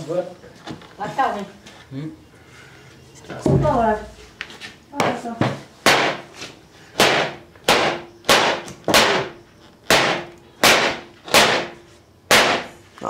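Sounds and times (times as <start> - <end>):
hammer striking wooden frame: 5.0 - 6.4, 7.0 - 12.8.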